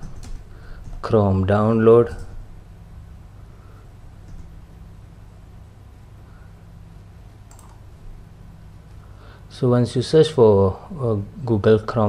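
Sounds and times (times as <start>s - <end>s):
steady low hum: 0.0s - 12.0s
keyboard click: 7.5s - 7.8s.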